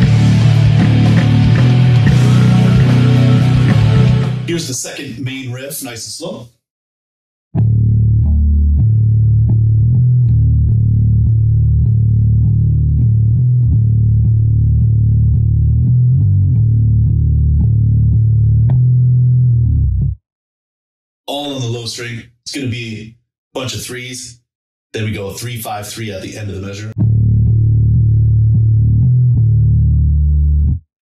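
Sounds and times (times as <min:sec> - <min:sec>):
electric bass played with pick: 0:00.0 - 0:04.6, 0:07.6 - 0:20.2, 0:27.0 - 0:30.8.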